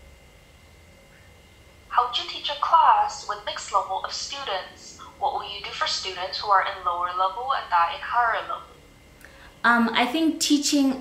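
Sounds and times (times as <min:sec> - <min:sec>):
faint steady high tones: 0:00.4 - 0:11.0.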